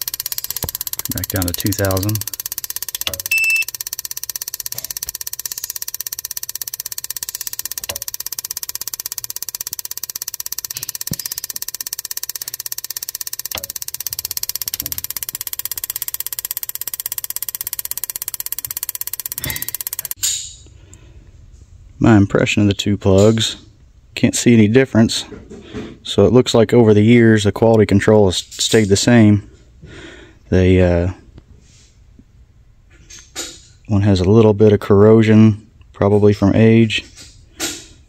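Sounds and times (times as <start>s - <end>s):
spark plugs snapping: 0.0s - 20.2s.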